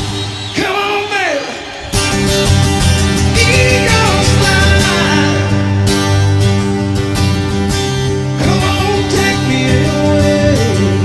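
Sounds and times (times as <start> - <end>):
acoustic guitar strumming: 1.6 - 11.0.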